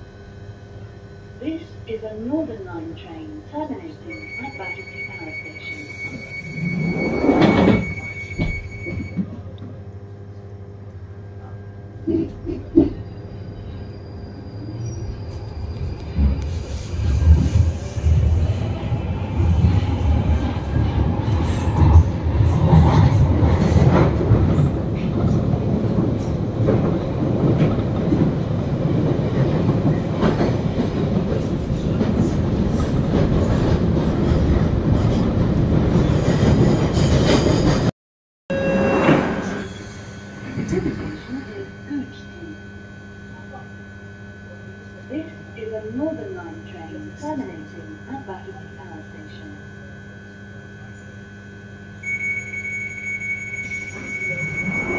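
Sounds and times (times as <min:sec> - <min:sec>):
train rumbling through tunnel: 0:00.0 - 0:37.9, 0:38.5 - 0:49.9, 0:50.8 - 0:54.9
train rattles: 0:15.2 - 0:37.9.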